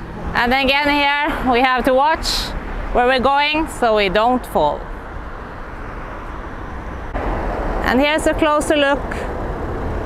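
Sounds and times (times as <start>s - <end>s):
rumble of passing cars: 0.0s - 10.0s.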